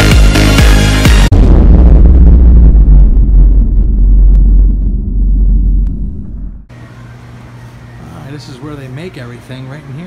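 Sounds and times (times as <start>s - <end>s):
deep loud rumble: 1.1s - 6.8s
steady hum: 1.3s - 10.0s.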